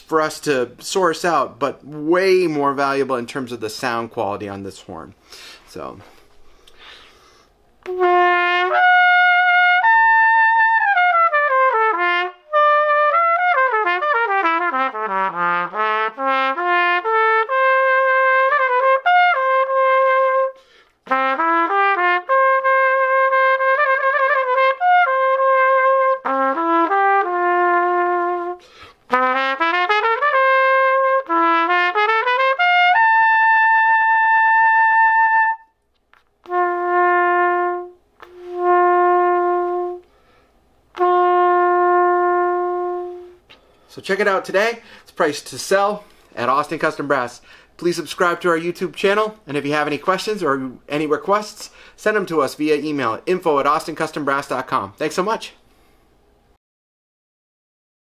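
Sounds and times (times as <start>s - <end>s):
player breathing: 5.2s - 7.6s, 20.6s - 21.0s, 28.6s - 29.1s, 40.0s - 40.6s, 43.5s - 43.9s, 44.8s - 45.1s, 46.0s - 46.4s, 47.4s - 47.8s, 51.7s - 52.0s, 55.6s - 56.2s.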